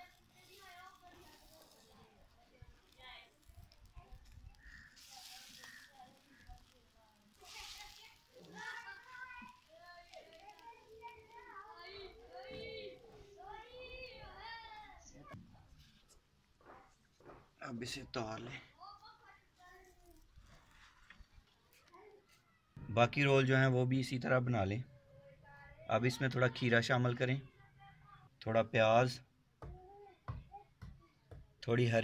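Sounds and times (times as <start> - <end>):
faint voices talking: 0.0 - 15.8.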